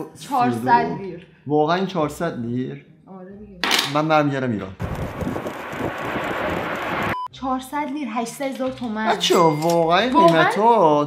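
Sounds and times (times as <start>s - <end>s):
jet engine rush: 4.8s - 7.2s.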